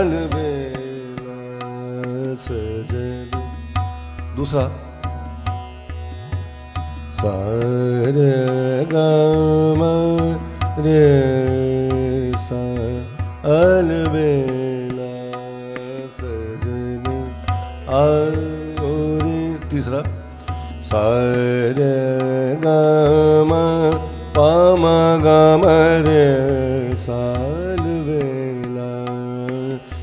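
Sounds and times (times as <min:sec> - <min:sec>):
man singing long notes: 0:07.2 - 0:20.0, 0:20.9 - 0:30.0.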